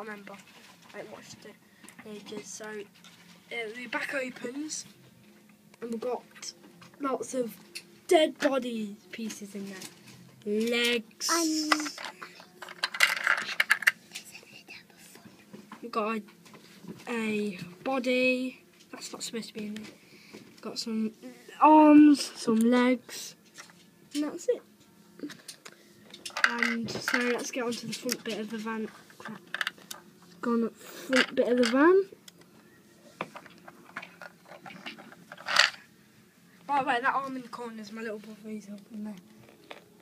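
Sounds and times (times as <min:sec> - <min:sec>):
plastic pieces clicking and rattling: 0:11.6 - 0:14.3, 0:25.5 - 0:28.5, 0:29.2 - 0:30.0, 0:31.1 - 0:31.8, 0:33.4 - 0:35.8.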